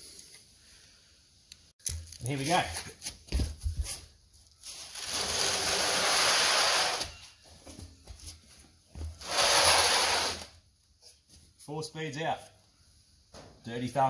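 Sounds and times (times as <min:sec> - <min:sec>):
board scraping on concrete: 0:04.9 - 0:07.2, 0:09.2 - 0:10.5.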